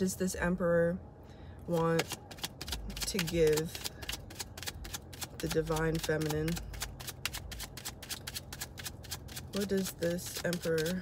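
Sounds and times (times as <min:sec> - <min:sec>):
cards being shuffled: 0:02.0 - 0:11.0.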